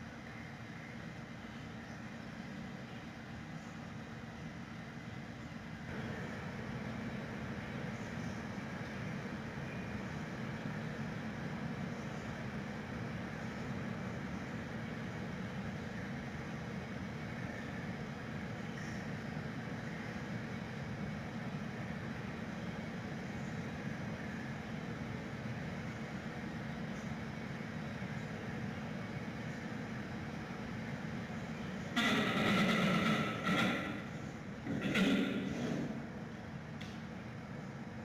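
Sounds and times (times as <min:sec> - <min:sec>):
low rumbling background noise: 0:00.0 - 0:38.0.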